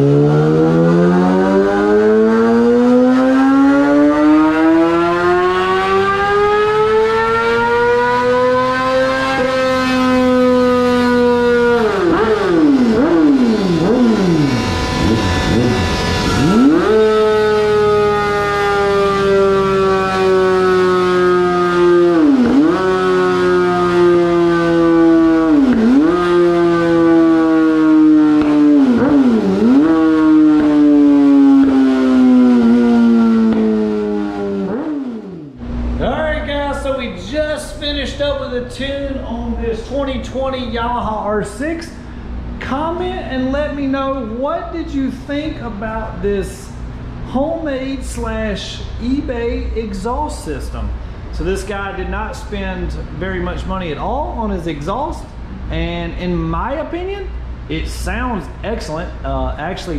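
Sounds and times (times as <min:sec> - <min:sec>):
motorcycle engine revving: 0:00.0 - 0:37.0.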